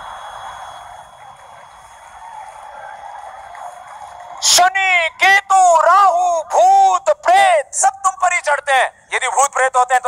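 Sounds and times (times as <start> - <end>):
audience clapping: 1.3 - 4.8.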